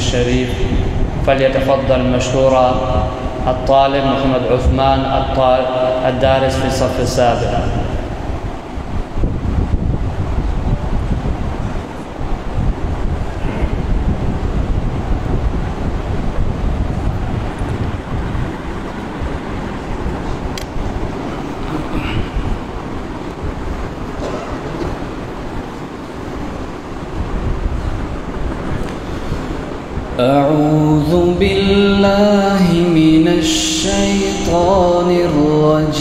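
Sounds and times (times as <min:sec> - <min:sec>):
low rumbling noise: 0:00.0 - 0:36.0.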